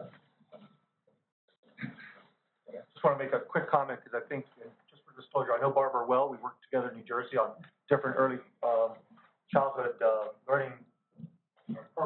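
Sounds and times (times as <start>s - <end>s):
low voice murmur: 1.8s - 9.0s, 9.6s - 10.8s
person speaking: 1.8s - 10.8s.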